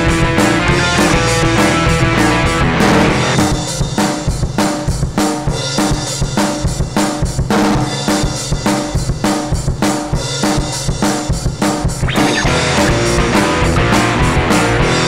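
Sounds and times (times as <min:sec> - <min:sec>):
drum kit beating rhythm: 0:00.0 - 0:15.0
punk band playing: 0:00.0 - 0:15.0.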